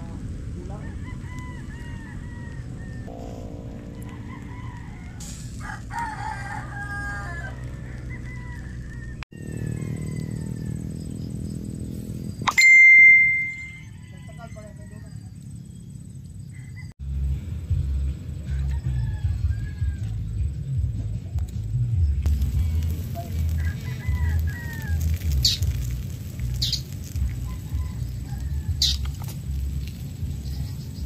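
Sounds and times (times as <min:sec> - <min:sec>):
steady low rumble: 0:02.5 - 0:05.9, 0:15.3 - 0:31.0.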